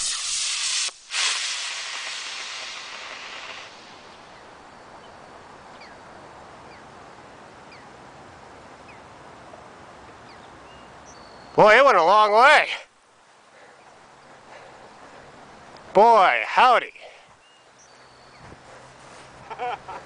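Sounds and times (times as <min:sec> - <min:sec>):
rocket motor rushing hiss: 0:00.0 - 0:04.5
faint bird chirps: 0:04.2 - 0:06.9, 0:10.2 - 0:11.8, 0:16.9 - 0:18.6.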